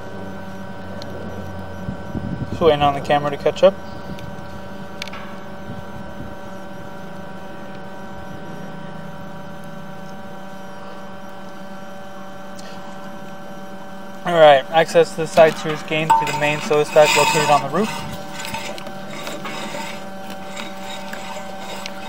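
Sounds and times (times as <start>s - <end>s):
electrical hum: 0.0s - 22.0s
high whining tones: 14.8s - 22.0s.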